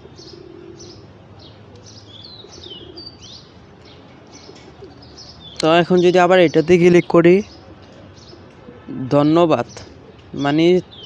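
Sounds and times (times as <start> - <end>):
small birds chirping: 0.0 - 11.0
person speaking: 5.6 - 7.5, 8.9 - 10.9.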